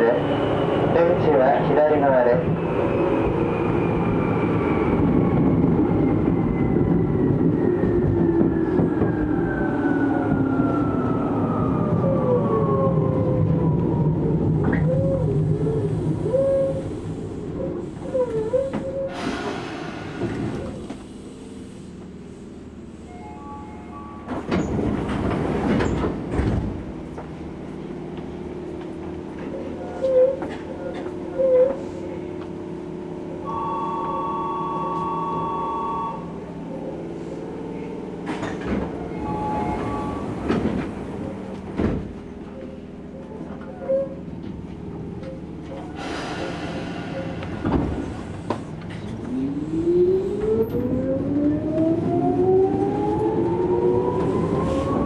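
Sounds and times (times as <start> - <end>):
train running noise: 13.7 - 55.0.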